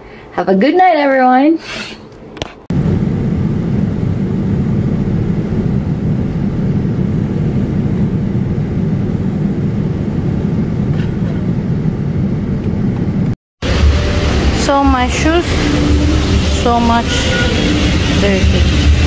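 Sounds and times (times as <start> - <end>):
airliner cabin engine roar: 2.4 - 19.0.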